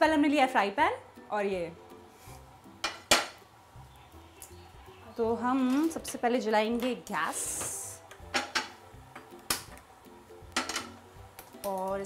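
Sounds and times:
frying pan clicks and knocks: 0:02.8 - 0:03.4, 0:08.2 - 0:09.8, 0:10.5 - 0:11.0.

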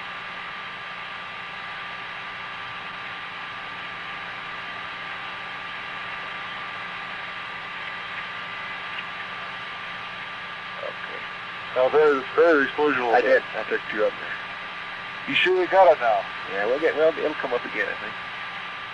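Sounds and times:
faint steady tones: 0:00.0 - 0:18.9
tape hiss and hum: 0:00.0 - 0:18.9.

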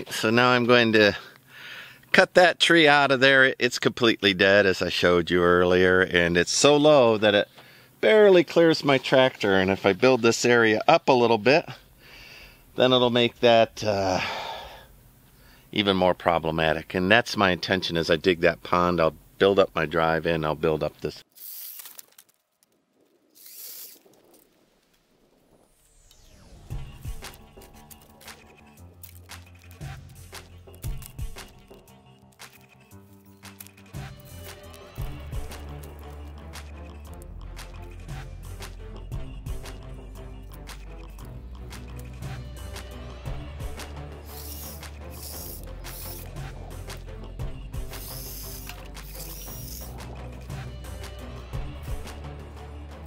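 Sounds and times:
small saw cutting branches: 0:23.3 - 0:24.1, 0:26.8 - 0:38.0, 0:40.6 - 0:52.2
background music: 0:25.9 - 0:53.0.

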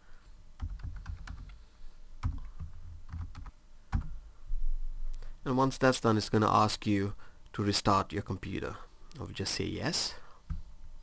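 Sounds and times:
keyboard typing: 0:00.6 - 0:01.6, 0:02.2 - 0:04.1.

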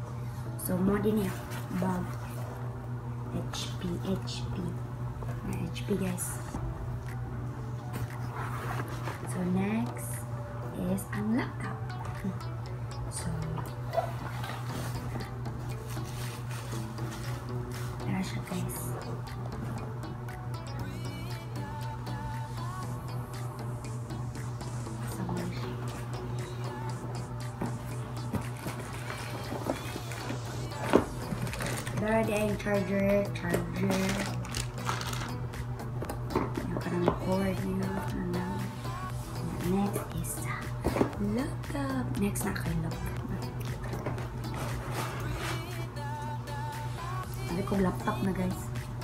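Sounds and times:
background music with light beat: 0:00.0 - 0:49.0
steady low hum: 0:00.0 - 0:49.0.

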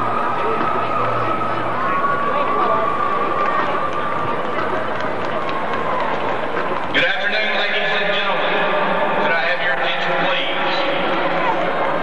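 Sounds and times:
stadium crowd noise: 0:00.0 - 0:12.0
echoing announcer voice: 0:06.8 - 0:12.0.

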